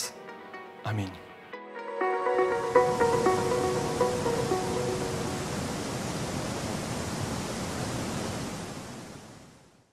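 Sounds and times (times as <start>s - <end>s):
closing music: 0.0s - 5.6s.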